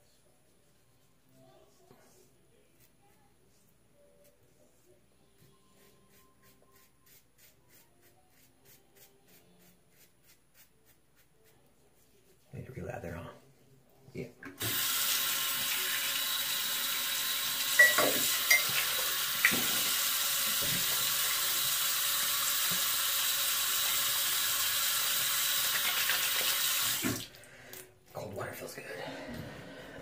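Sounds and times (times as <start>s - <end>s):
sink tap running: 14.6s - 27.2s.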